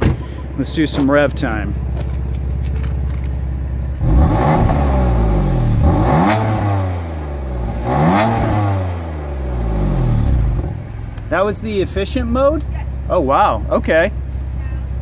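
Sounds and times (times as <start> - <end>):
car engine idling and revving: 0.0 - 15.0.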